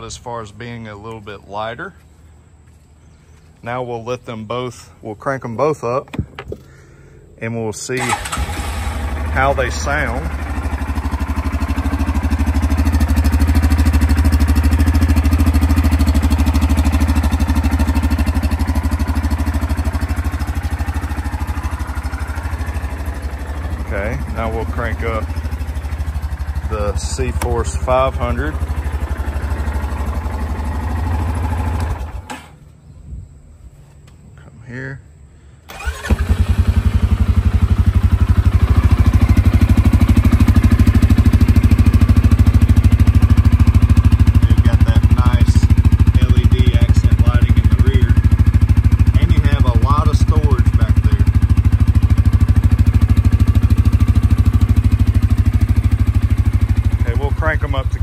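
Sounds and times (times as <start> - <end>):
atv engine idling: 0.0 - 32.6, 35.7 - 58.0.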